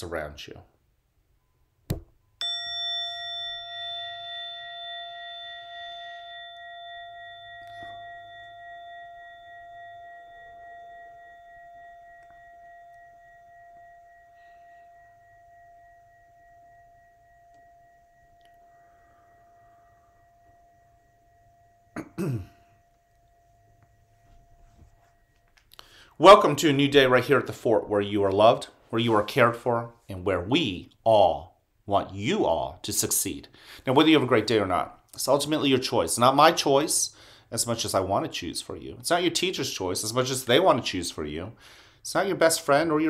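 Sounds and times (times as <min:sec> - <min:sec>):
meditation chime ringing: 0:01.4 - 0:27.8
throat clearing: 0:22.0 - 0:22.7.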